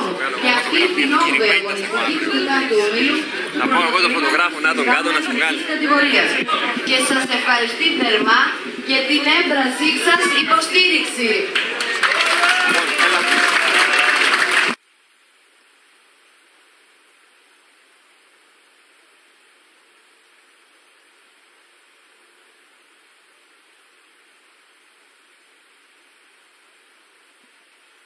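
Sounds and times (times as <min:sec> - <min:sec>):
noisy background: 0:00.0 - 0:14.8
faint steady hiss: 0:14.5 - 0:28.0.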